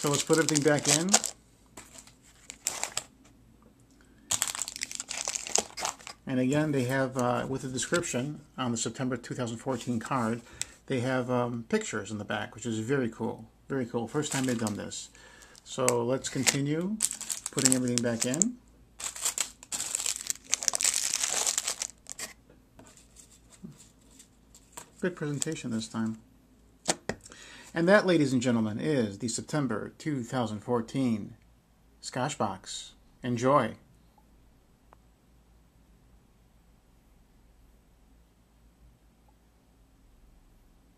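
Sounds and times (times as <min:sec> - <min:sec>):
plastic wrappers crinkling: 0:00.0 - 0:03.1, 0:04.3 - 0:06.3, 0:14.2 - 0:26.2.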